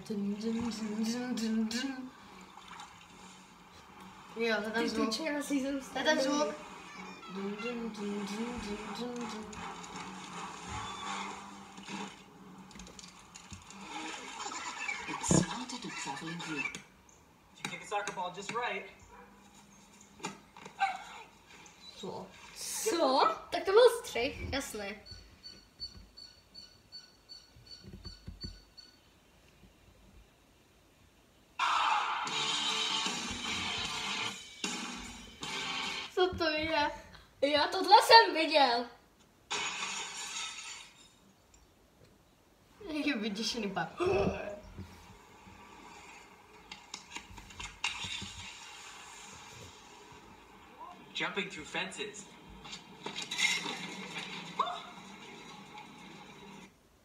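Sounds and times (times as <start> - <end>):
video audio through laptop speakers: 0.0 - 30.3, 31.5 - 41.4, 42.8 - 56.8
dog barking: 19.1 - 19.4, 20.8 - 21.3, 54.6 - 55.0.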